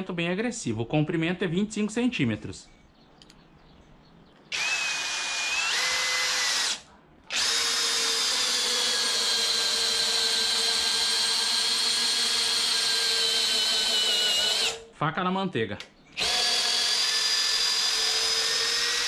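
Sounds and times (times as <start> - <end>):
cordless drill driving screw into wood: 4.5 - 14.8, 16.2 - 19.0.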